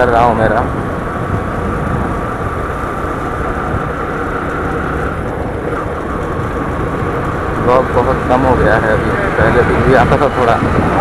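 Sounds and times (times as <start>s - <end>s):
vehicle wind and road noise: 0.0s - 11.0s.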